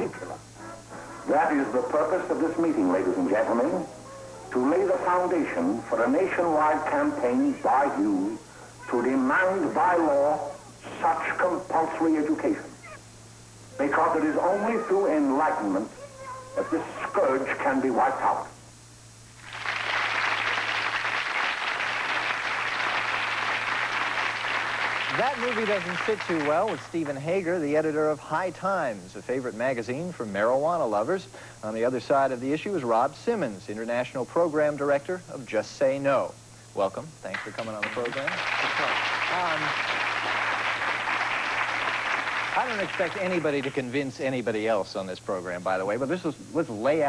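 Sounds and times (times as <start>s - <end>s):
studio audience applauding: 19.4s - 27.6s, 37.3s - 44.2s.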